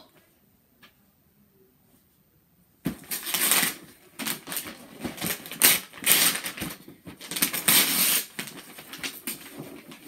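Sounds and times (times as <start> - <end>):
wrapping paper ripping: 2.9 - 10.0.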